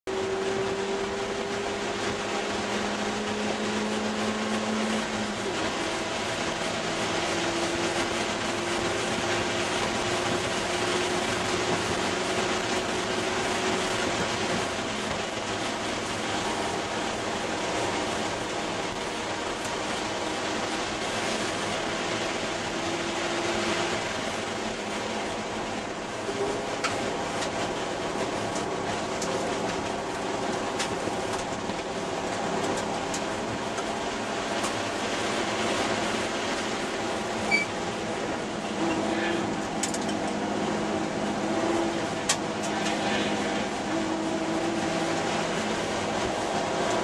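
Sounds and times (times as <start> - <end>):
car engine running hard: 0.0 - 47.0
wind and road noise: 0.0 - 47.0.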